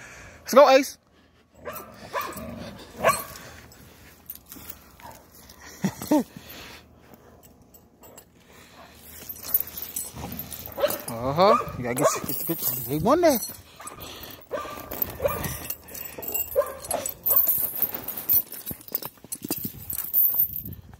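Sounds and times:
dog barking: 1.6 - 2.4, 3.0 - 3.3, 10.7 - 12.3, 13.8 - 15.6, 16.2 - 17.1.

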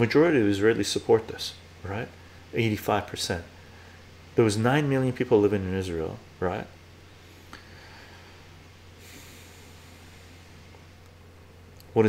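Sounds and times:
steady low hum: 0.0 - 12.0
man breathing out through nose: 7.2 - 10.6.

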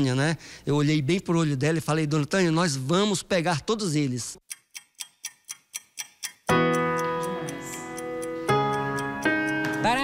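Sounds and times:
clock ticking: 4.4 - 10.0
soft keyboard chord music: 6.5 - 10.0.

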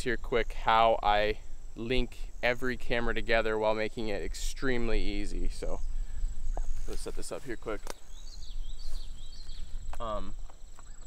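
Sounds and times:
bird chirping: 0.0 - 11.0
high insect drone: 0.0 - 11.0.

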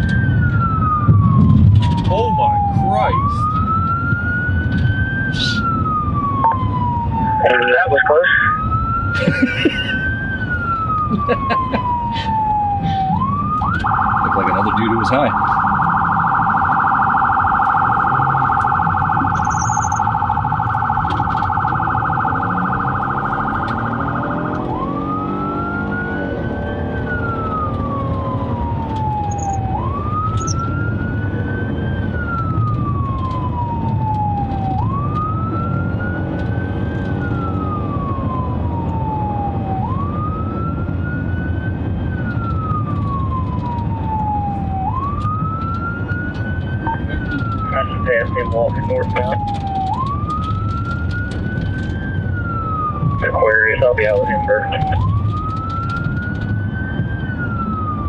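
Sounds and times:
engine and road noise: 0.0 - 58.0
police siren yelp and wail: 0.0 - 58.0.

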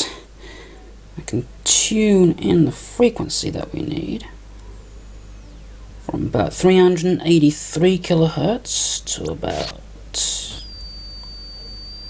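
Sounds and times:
tesla coil high-pitched whistle: 9.3 - 12.0.

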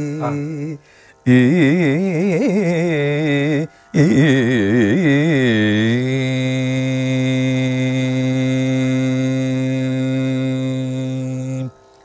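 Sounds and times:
man singing unaccompanied: 0.0 - 11.8.

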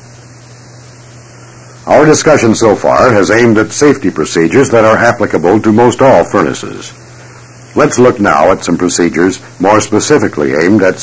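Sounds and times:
low mains hum: 0.0 - 11.0
recording hiss: 0.0 - 11.0
man narrating: 1.8 - 7.0, 7.8 - 11.0.

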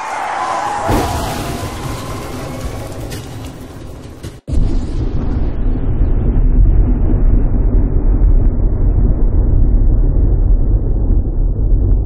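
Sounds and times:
steady low rumbling: 0.9 - 12.0.

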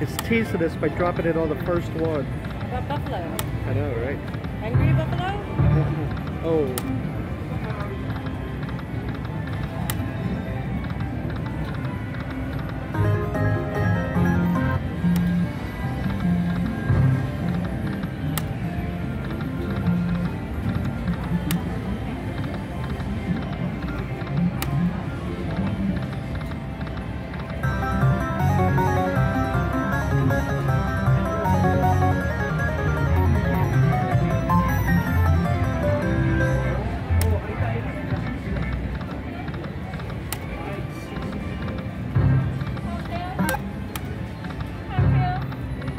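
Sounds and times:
slot machine game music: 0.0 - 26.0, 27.1 - 38.9
melodic win jingle: 27.6 - 37.0.

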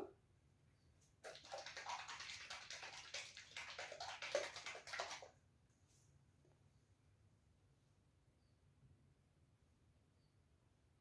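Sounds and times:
paint sloshing in squeeze bottle: 1.2 - 5.3.

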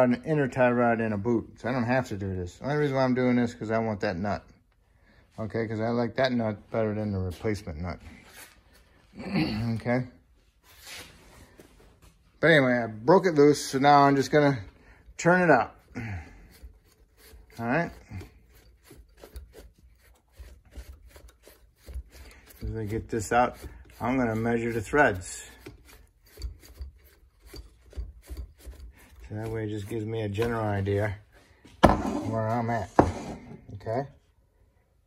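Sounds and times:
metal scraping on threaded rod: 15.2 - 31.1.

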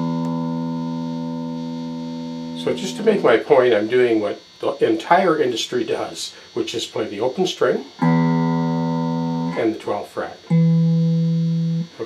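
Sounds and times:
electric guitar sustained low note: 0.0 - 5.9, 7.9 - 12.0.

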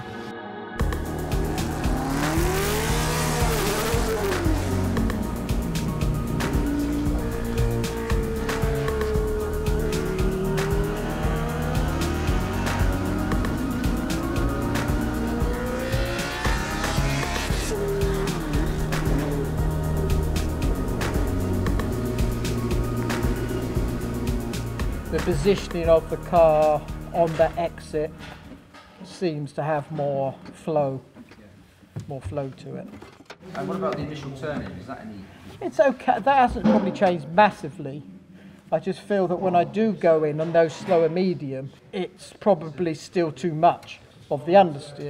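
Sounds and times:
background music: 0.0 - 30.2
racing car engine at speed: 0.8 - 27.4.

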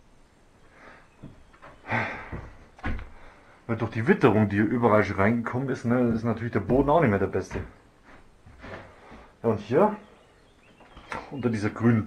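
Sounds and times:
footsteps on wooden floor: 1.2 - 3.3, 5.7 - 9.3.

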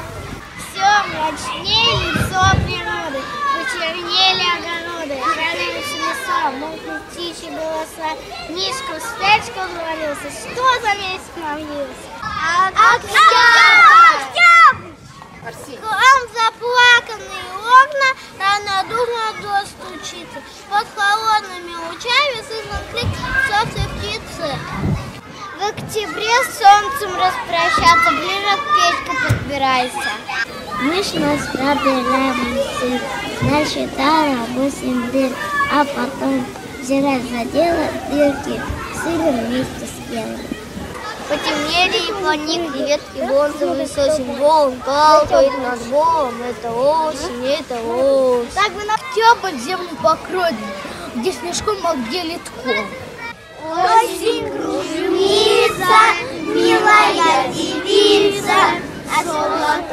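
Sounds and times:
young child talking: 0.0 - 59.9.

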